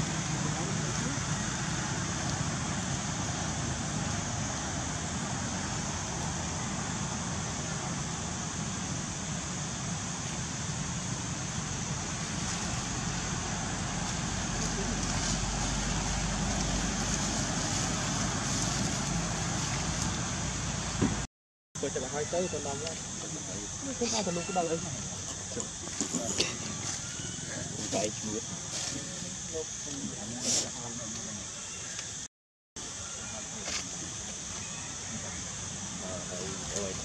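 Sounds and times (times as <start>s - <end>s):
constant outdoor hiss: 0.0s - 37.0s.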